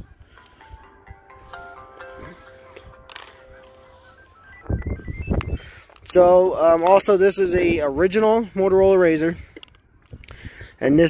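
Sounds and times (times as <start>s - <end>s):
phone playing electronic tune: 0.0s - 6.0s.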